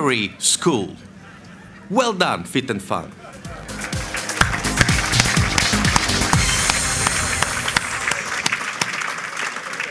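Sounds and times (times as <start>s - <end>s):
music: 3.3s - 8.5s
audience applauding: 3.6s - 9.9s.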